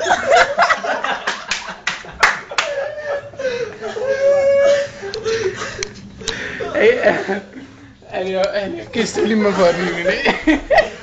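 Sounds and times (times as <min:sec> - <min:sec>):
laughter: 0:00.0 - 0:05.9, 0:09.8 - 0:11.0.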